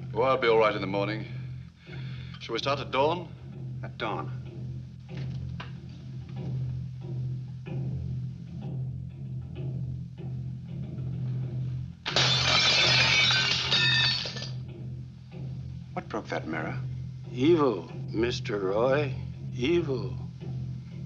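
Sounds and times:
film score with pulsing beat: 0.0s - 12.1s, 14.6s - 21.0s
glass shattering: 12.1s - 14.6s.

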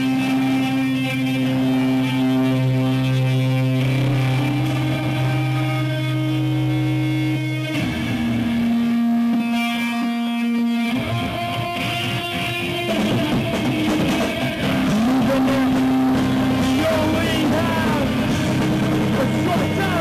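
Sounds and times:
live rock band: 0.0s - 20.0s
sustained electric guitar note: 0.0s - 20.0s.

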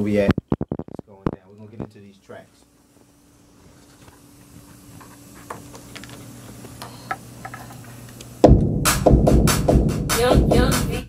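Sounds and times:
faint steady hum: 0.0s - 8.7s
loud hip-hop beat: 8.4s - 11.0s.

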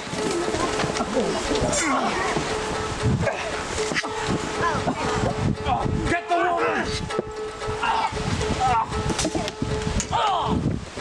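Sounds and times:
men shouting battle cries: 4.8s - 7.0s.

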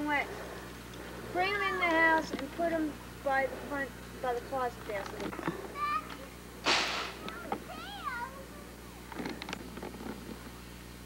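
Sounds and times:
faint clicks and rustles: 0.2s - 6.3s, 9.0s - 10.6s.

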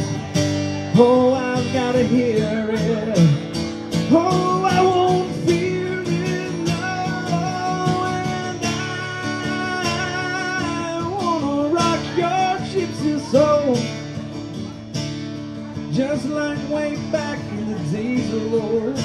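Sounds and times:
strummed acoustic guitar: 0.0s - 19.0s
man singing wordless notes: 0.8s - 14.1s, 15.8s - 19.0s.

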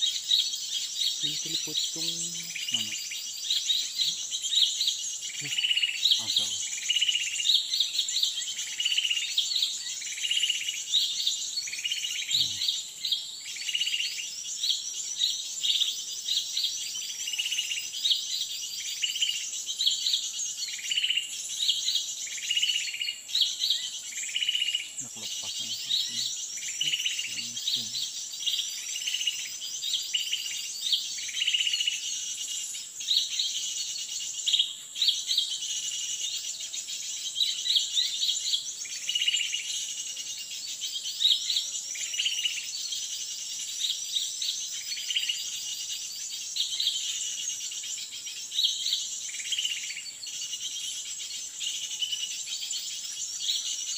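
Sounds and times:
insects buzzing: 0.0s - 53.9s
bird call: 1.0s - 7.4s, 11.8s - 12.8s, 22.6s - 28.2s.

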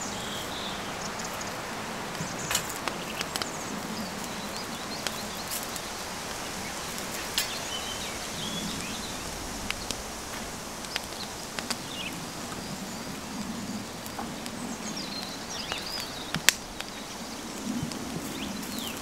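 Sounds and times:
chirping bird calls: 0.0s - 10.0s
steady rushing hiss: 0.0s - 19.0s.

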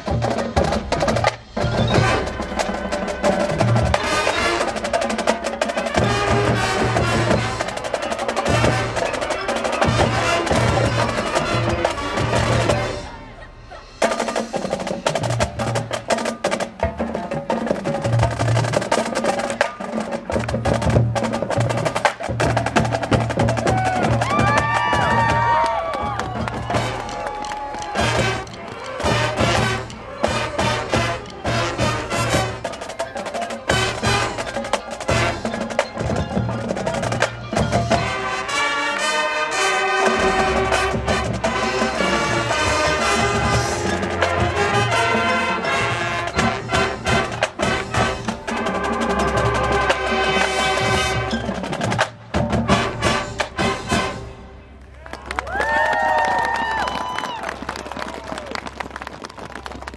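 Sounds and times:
marching band playing: 0.0s - 59.9s.

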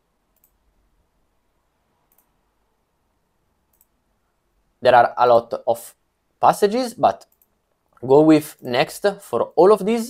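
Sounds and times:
faint computer mouse clicks: 0.3s - 0.6s, 2.0s - 2.4s, 3.7s - 4.0s, 7.2s - 7.6s.

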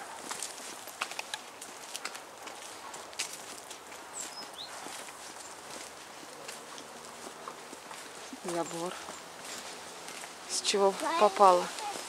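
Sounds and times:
footsteps on dirt path: 0.0s - 12.0s
high bird chirp: 4.2s - 4.8s.

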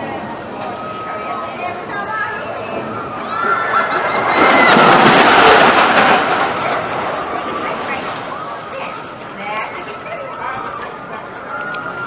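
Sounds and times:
roller coaster rushing: 0.0s - 12.0s
people screaming: 2.2s - 7.6s, 11.4s - 12.0s.

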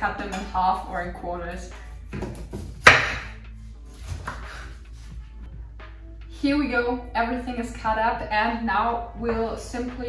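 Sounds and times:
soft background music: 0.0s - 10.0s
knife chopping cauliflower on board: 2.1s - 3.3s.

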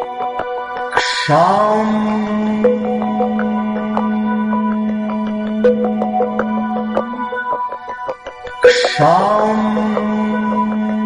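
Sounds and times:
plucked notes: 0.9s - 11.0s
bright struck sound: 1.0s - 7.5s, 8.6s - 11.0s
low chanted note: 1.3s - 7.5s, 8.6s - 11.0s.

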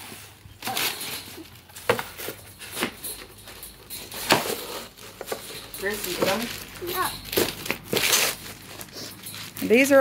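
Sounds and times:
tissue paper rustling: 5.9s - 10.0s.

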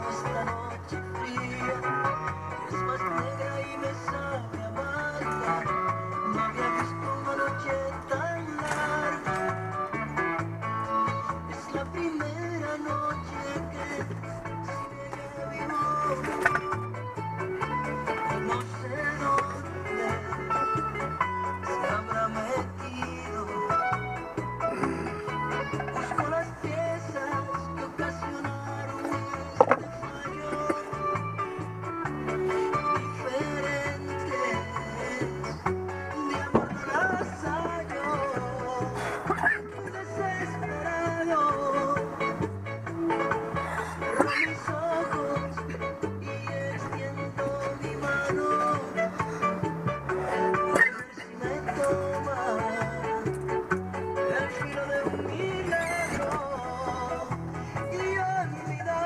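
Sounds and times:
latin music from radio: 0.0s - 59.0s.

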